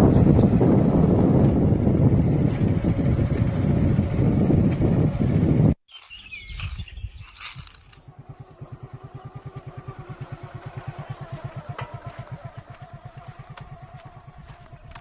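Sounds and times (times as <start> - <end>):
tractor engine chugging: 7.6 - 15.0.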